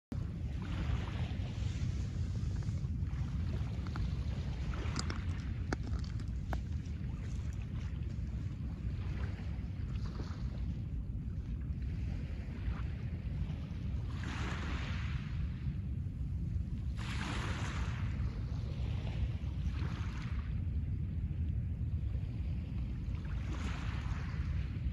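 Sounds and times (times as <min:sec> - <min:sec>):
wind rumble on microphone: 0:00.1 - 0:24.9.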